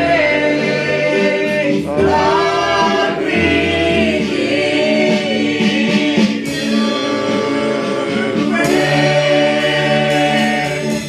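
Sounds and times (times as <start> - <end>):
congregation singing: 0.0 - 11.0.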